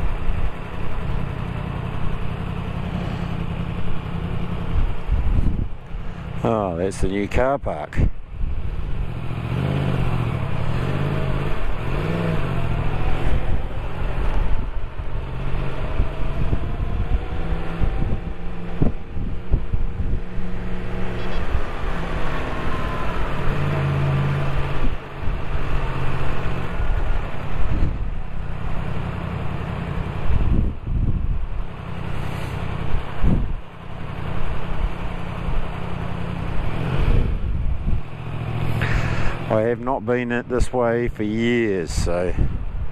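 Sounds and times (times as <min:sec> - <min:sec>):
motorcycle engine running: 0:00.0 - 0:06.6.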